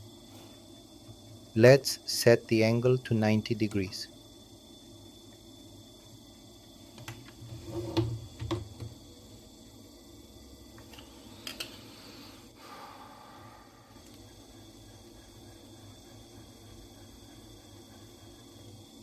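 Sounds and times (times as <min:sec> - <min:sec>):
motor humming faintly: 0:00.0 - 0:19.0.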